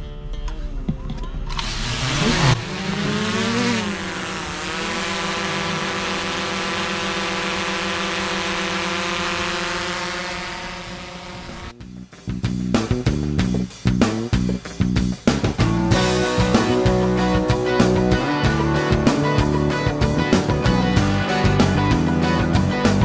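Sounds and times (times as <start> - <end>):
drone propellers buzzing: 1.5 - 11.8, 15.6 - 23.0.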